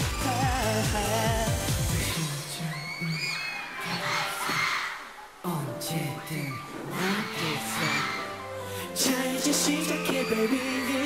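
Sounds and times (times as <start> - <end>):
pop song with steady beat: 0.0 - 4.7, 5.4 - 11.0
audience screaming and cheering: 0.0 - 11.0.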